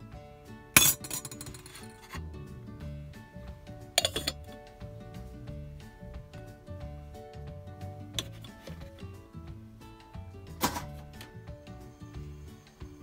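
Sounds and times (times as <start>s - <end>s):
background music: 0.0s - 13.0s
metal lid clinking on pot: 0.8s - 2.2s, 4.0s - 4.6s.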